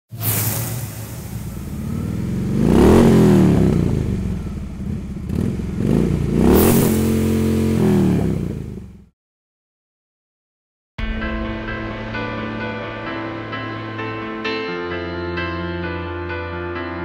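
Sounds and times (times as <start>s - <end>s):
motorcycle engine revving: 0.2s - 9.1s.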